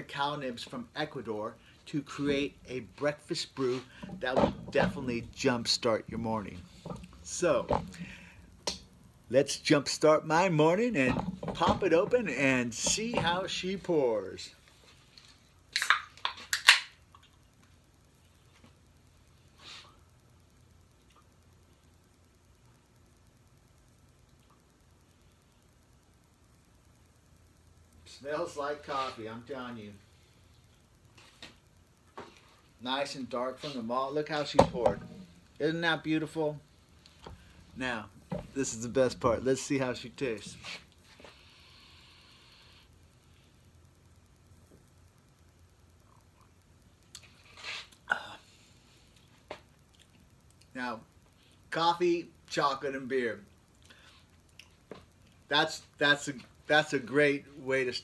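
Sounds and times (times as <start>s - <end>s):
faint hiss: 0.0s - 58.0s
low steady hum: 0.0s - 58.0s.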